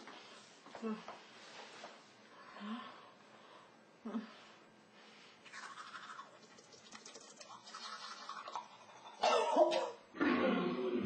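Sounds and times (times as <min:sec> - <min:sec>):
toothbrush scrubbing teeth: 0:05.5 - 0:09.2
woman coughing: 0:09.2 - 0:10.0.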